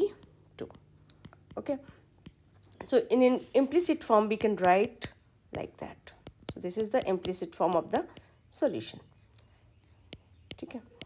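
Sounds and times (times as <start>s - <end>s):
stylus tapping on glass screen: 0.2s - 3.0s, 3.8s - 8.4s, 9.4s - 11.0s.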